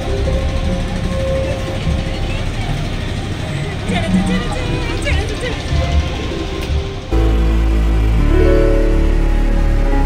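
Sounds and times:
murmur of voices: 0.0s - 7.6s
boat engine rumble: 0.0s - 10.0s.

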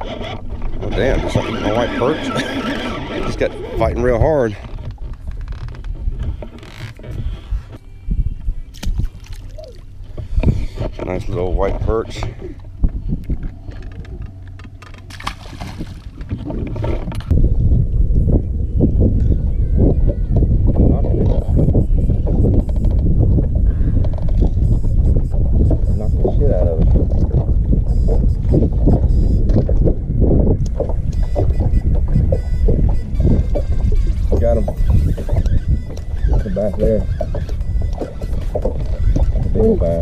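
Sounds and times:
water lapping against boat hull: 0.0s - 17.3s, 18.9s - 40.0s
wind buffeting microphone: 0.0s - 40.0s.

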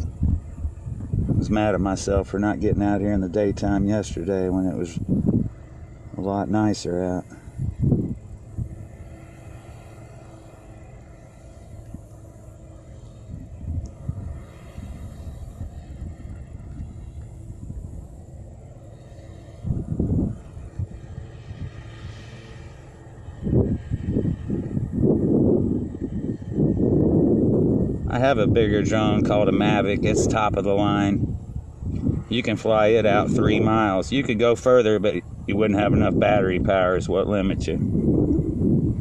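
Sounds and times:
low outdoor rumble: 0.0s - 39.0s.

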